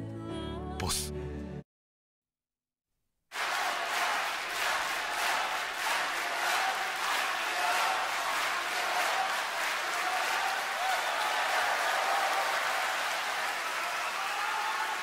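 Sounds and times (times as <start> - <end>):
audience applauding: 3.3 - 15.0.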